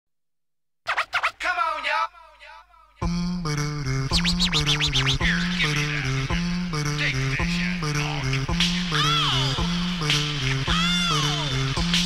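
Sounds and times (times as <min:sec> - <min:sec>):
turntable scratches: 0:00.9 - 0:01.9, 0:04.1 - 0:12.0
hip-hop track: 0:00.9 - 0:12.0.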